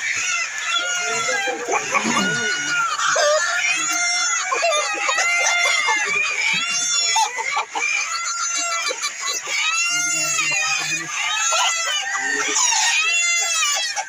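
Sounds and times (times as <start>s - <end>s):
chickens clucking: 0.0s - 14.0s
loud arching chicken calls: 0.0s - 14.0s.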